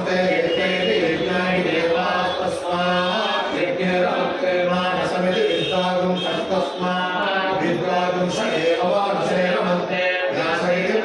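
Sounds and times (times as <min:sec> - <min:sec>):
man chanting verses: 0:00.0 - 0:11.0.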